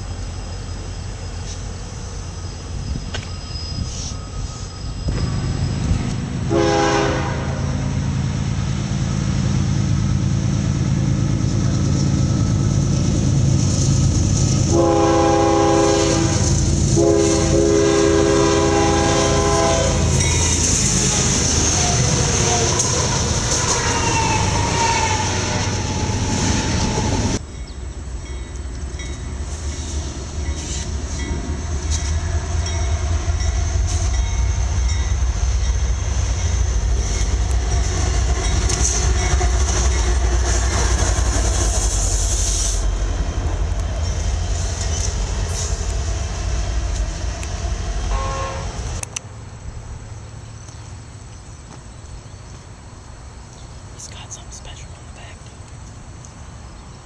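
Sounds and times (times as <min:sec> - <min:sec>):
diesel locomotive engine rumble: 0:00.0 - 0:57.0
train air horn blasts: 0:06.4 - 0:08.0, 0:14.7 - 0:20.5, 0:48.1 - 0:48.9.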